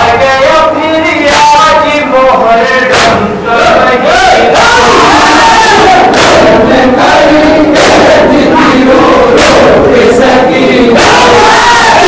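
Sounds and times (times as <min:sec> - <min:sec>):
man reciting: 0:00.0 - 0:09.0
crowd of men chanting: 0:00.0 - 0:12.0.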